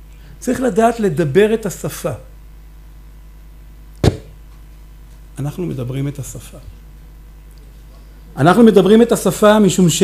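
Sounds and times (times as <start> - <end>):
steady low hum: 0.0 - 10.0
sharp low thump: 4.0 - 4.4.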